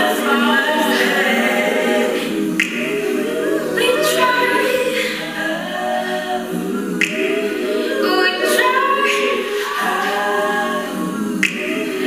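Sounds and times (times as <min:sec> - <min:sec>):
a cappella voices singing: 0:00.0 - 0:12.0
sharp snap: 0:02.6 - 0:03.0, 0:07.0 - 0:07.4, 0:11.4 - 0:11.7.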